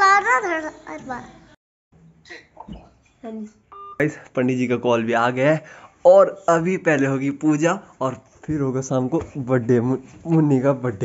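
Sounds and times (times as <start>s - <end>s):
electronic phone beep: 3.7s - 4.0s.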